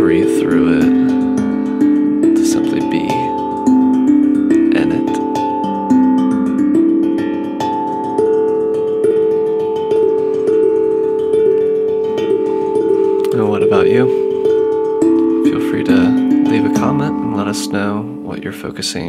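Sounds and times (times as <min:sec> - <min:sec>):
steel tongue drum melody: 0:00.0 - 0:19.0.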